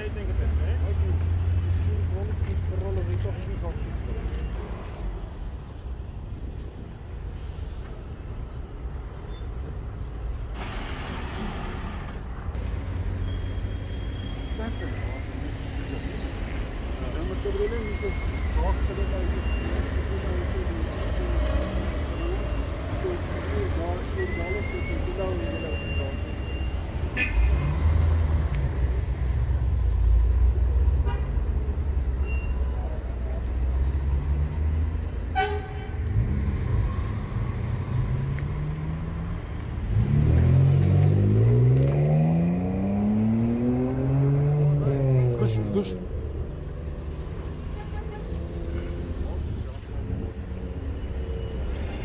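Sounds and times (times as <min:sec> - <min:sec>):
vehicle engines rumbling: 0:00.0 - 0:52.0
car horn toot: 0:35.3 - 0:36.0
vehicle engine revving: 0:36.0 - 0:45.7.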